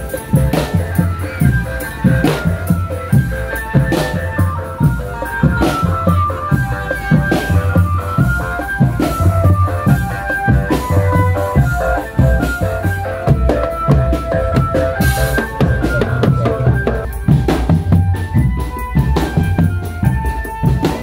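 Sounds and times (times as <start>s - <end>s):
drums beating steady rhythm: 0.0s - 21.0s
organ-like melody: 0.0s - 21.0s.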